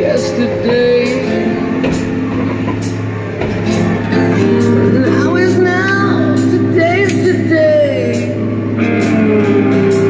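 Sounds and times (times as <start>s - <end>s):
rock music with guitar: 0.0s - 10.0s.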